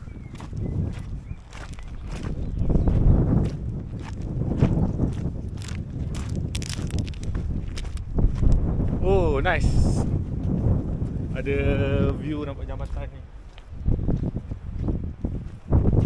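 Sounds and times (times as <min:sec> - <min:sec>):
wind rumbling on microphone: 0:00.0 - 0:16.0
footsteps crunching on shingle: 0:00.1 - 0:09.0, 0:12.1 - 0:16.0.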